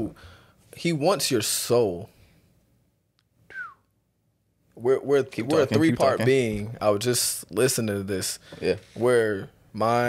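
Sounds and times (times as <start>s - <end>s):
whistle-like squeak: 3.5s - 3.9s.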